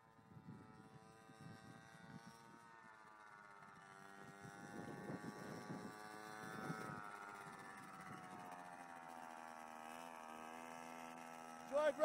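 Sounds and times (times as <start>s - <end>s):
mini quad bike motor whine: 0.0s - 12.0s.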